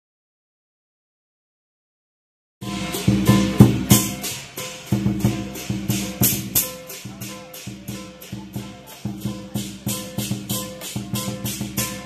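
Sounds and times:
cymbals clashing: 2.6s - 12.0s
drum beating: 2.6s - 12.0s
gong: 2.6s - 12.0s.

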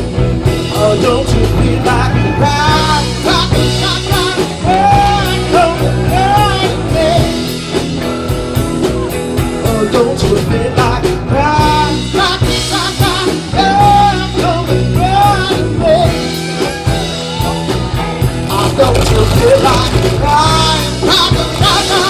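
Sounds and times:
bass guitar: 0.0s - 22.0s
electric guitar: 0.0s - 22.0s
steady drum beat: 0.0s - 22.0s.

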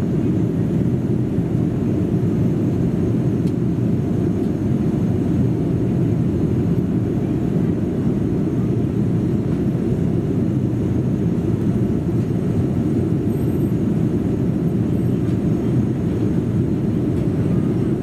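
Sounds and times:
airliner cabin engine roar: 0.0s - 18.0s.

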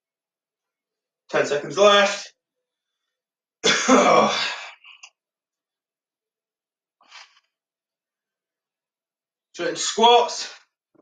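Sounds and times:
man coughing: 3.6s - 5.0s.

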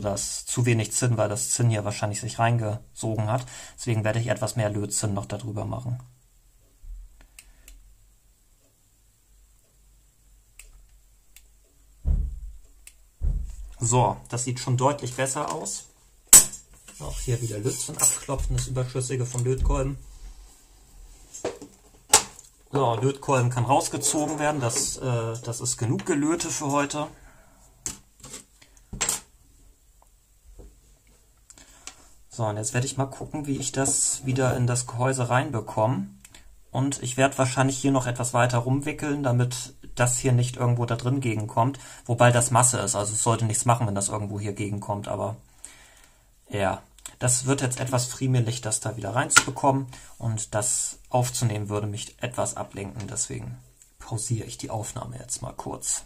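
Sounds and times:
dull thumps: 12.0s - 13.8s.

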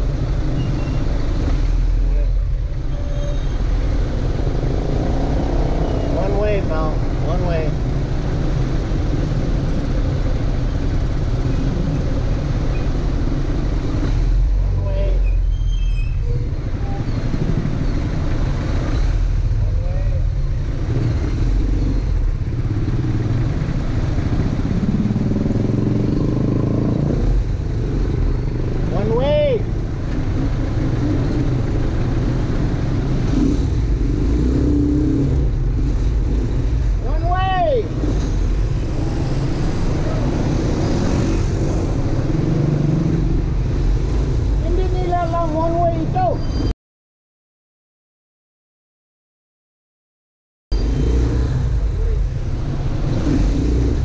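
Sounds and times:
motorcycle engine and road rumble: 0.0s - 46.7s, 50.7s - 54.0s.

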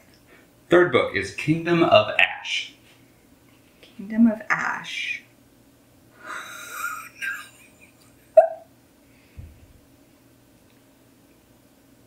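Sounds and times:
woman vocal squeak: 8.4s - 8.6s
soft low bump: 9.4s - 9.8s.

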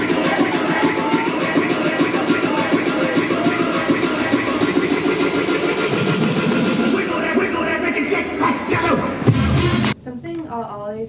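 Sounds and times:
crowd voices: 0.0s - 9.2s
dance music: 0.0s - 10.0s.

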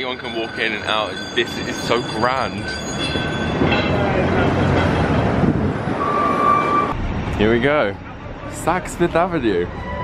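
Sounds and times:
city traffic rumble: 0.0s - 10.0s
high squeal: 6.0s - 7.0s, 9.6s - 10.0s.

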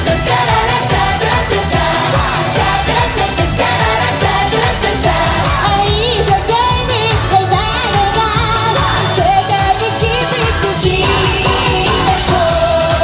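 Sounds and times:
group singing pop: 0.0s - 13.0s
pop backing music with beat: 0.0s - 13.0s.

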